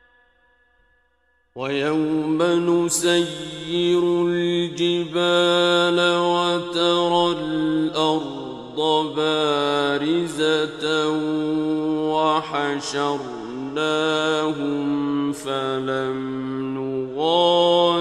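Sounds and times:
man reciting melodically: 1.6 - 18.0.

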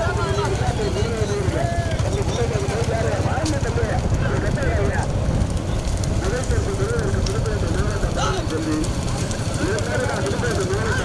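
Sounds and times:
low rumbling crackling noise: 0.0 - 11.0.

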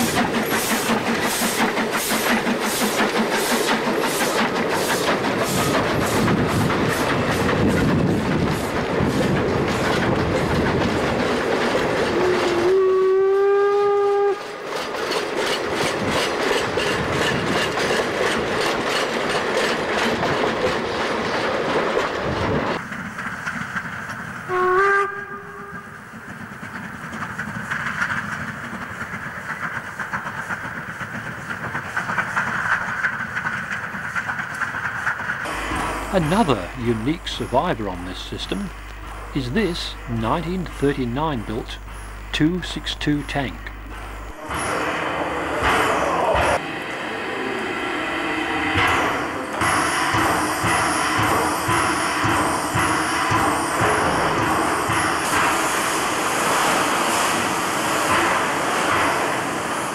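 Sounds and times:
steam locomotive exhaust beating: 0.0 - 59.9
steam whistle: 12.2 - 14.5, 24.5 - 26.0, 44.3 - 54.2.

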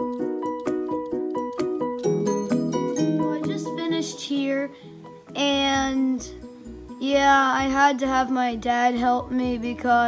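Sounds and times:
plucked acoustic guitar music: 0.0 - 10.0.

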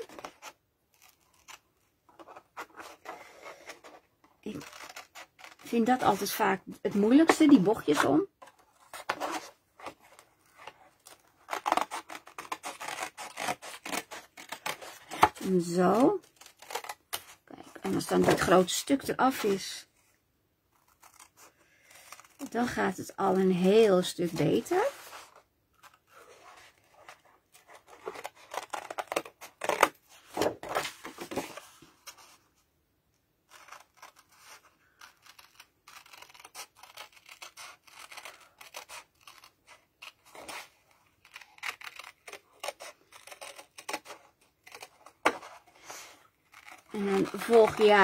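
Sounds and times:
paper rustling: 24.2 - 32.4, 44.6 - 48.0.

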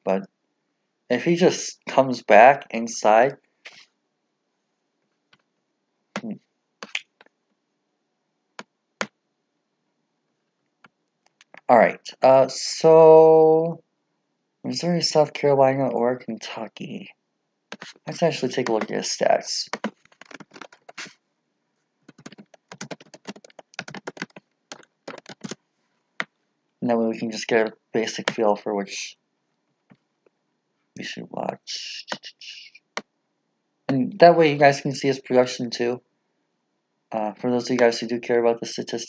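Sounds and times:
computer mouse clicks: 22.1 - 25.6
person murmuring: 31.0 - 32.8.

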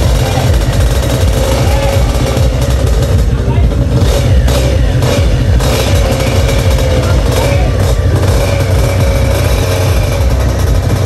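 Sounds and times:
scooter engine running: 0.0 - 11.0.

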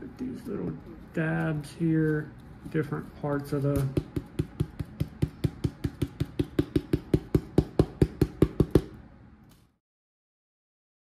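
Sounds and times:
foil tapping on foam board: 3.4 - 9.0.

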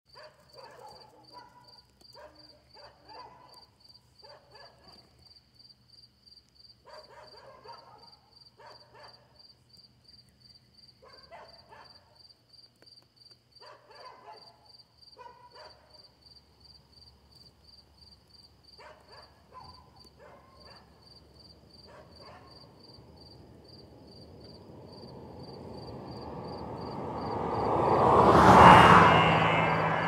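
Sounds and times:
dog barking faintly: 0.1 - 5.4, 6.8 - 9.4, 11.0 - 12.2, 13.6 - 16.1, 18.8 - 21.0, 21.8 - 22.7
cricket chirping: 0.1 - 30.0.

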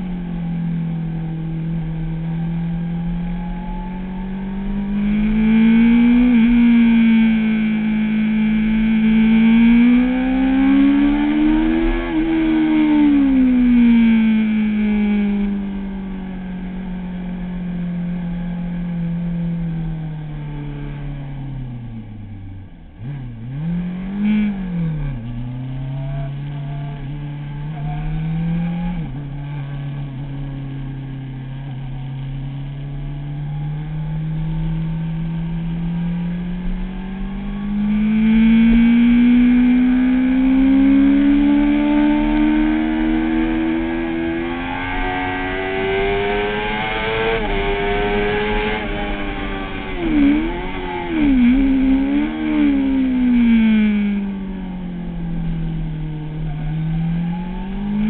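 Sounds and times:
motorcycle engine revving: 0.0 - 58.0.

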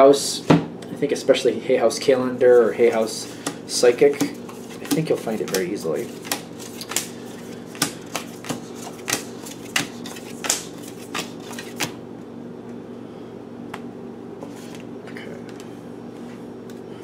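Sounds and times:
steady low hum: 0.0 - 17.0
cards being shuffled: 2.6 - 12.0.

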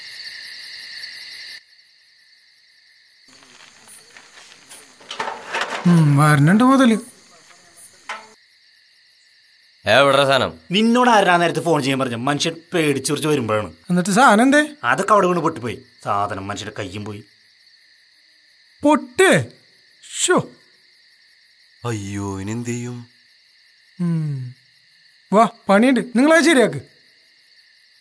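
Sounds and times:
crickets chirping: 0.0 - 28.0
brief vocal sound: 24.0 - 24.6.

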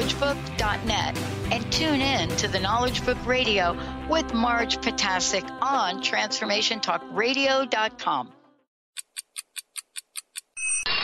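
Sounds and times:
music: 0.0 - 8.7
clock ticking: 9.0 - 10.6.

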